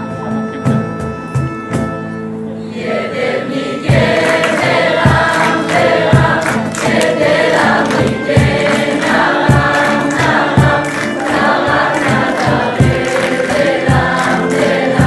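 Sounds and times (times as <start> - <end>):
mixed choir singing: 2.6 - 15.0
steady beat: 3.8 - 15.0.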